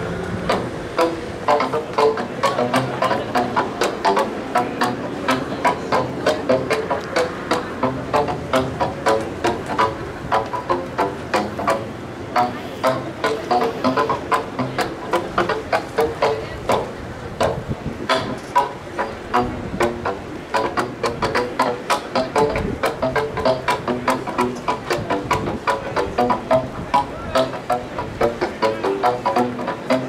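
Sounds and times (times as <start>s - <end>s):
pipes struck with paddles: 0.0s - 30.0s.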